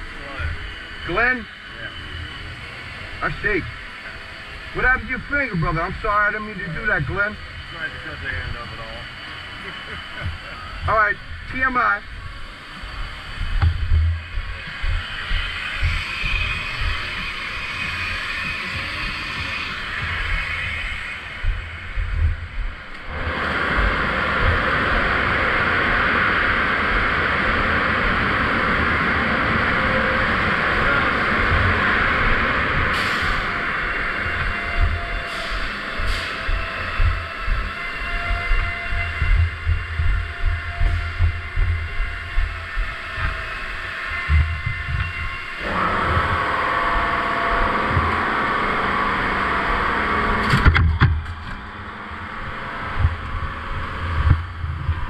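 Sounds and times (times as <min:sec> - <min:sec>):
low thumps: 0:12.9 - 0:24.7, 0:31.4 - 0:48.4, 0:52.4 - 0:55.0
car wash machinery rushing: 0:23.0 - 0:37.8.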